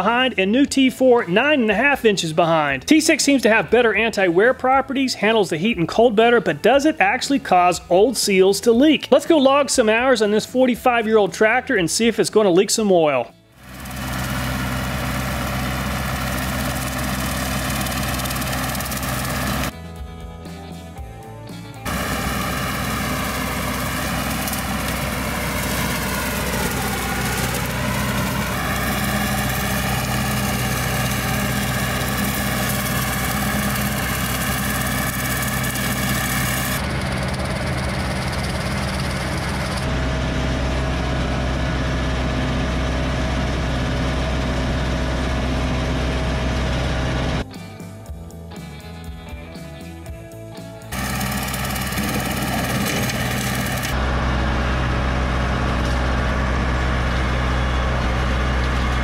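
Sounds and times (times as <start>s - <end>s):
tractor engine running under load: 13.6s - 19.8s, 21.8s - 47.5s, 50.8s - 59.0s.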